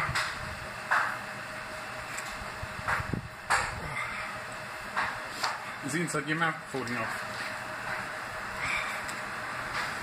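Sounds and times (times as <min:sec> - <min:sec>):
man breathing hard: 0:08.5 - 0:09.1.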